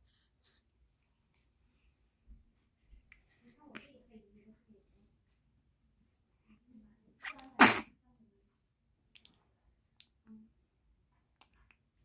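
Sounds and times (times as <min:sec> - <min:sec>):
baby sneezing: 0:07.2 - 0:07.9.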